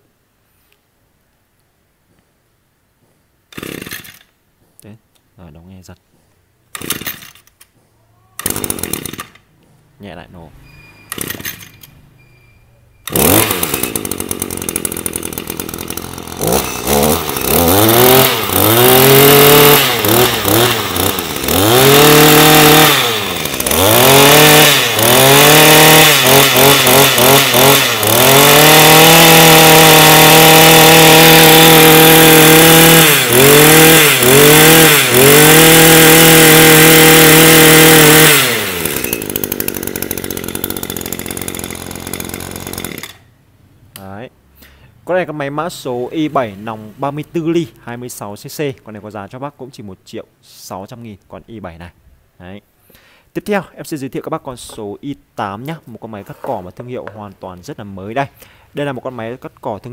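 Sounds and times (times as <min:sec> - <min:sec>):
brush cutter engine revving: 0:03.5 - 0:04.3, 0:06.7 - 0:07.5, 0:08.4 - 0:09.6, 0:10.2 - 0:11.9, 0:13.0 - 0:43.3.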